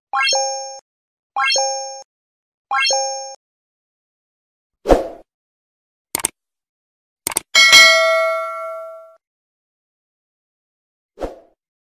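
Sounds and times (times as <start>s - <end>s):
mouse double click: 6.2s - 6.4s, 7.3s - 7.5s
bell ding: 7.6s - 9.2s.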